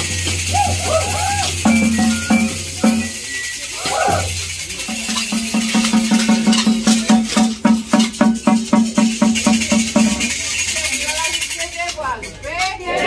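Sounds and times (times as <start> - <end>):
frame drum beaten with stick: 0.0 - 10.4
rattles shaking: 0.0 - 12.9.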